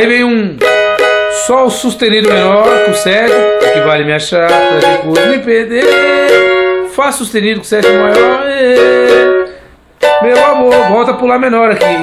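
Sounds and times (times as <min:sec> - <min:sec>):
small guitar strumming chords: 0:00.6 - 0:07.0, 0:07.6 - 0:12.0.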